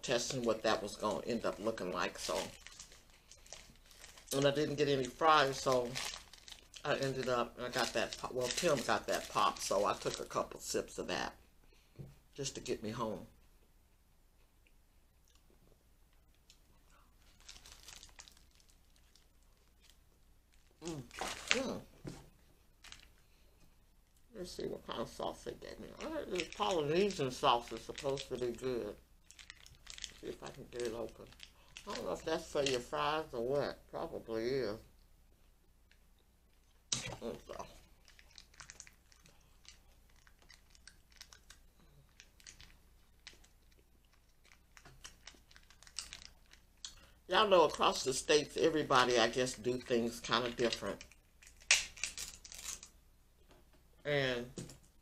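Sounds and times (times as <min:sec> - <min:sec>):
paper wrapper crinkling: 0:00.0 - 0:11.0, 0:17.2 - 0:21.9, 0:22.8 - 0:23.2, 0:25.0 - 0:33.3, 0:36.5 - 0:53.0.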